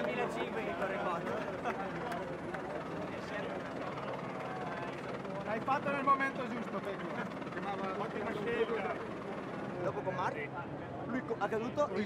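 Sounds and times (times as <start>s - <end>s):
other voices: 0.0s - 12.0s.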